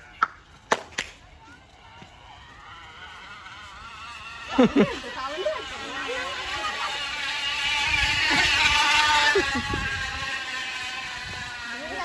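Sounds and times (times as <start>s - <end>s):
recorded motorcycle engine sound: 2.9s - 12.0s.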